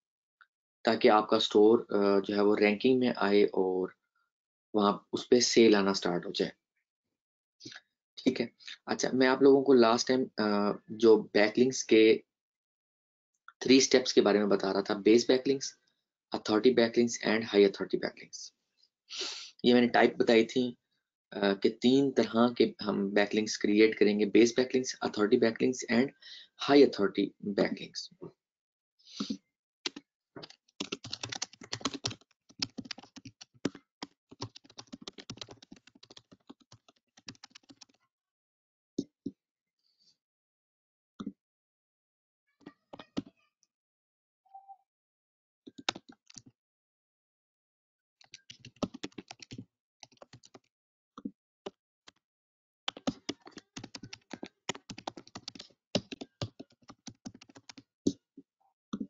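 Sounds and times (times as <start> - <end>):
typing on a computer keyboard: 29.9 - 38.0, 45.7 - 46.5, 48.2 - 50.7, 52.9 - 57.8.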